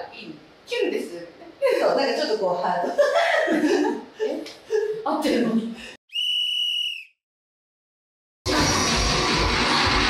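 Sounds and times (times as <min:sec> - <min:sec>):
high-pitched whistle blast: 0:06.1 - 0:07.2.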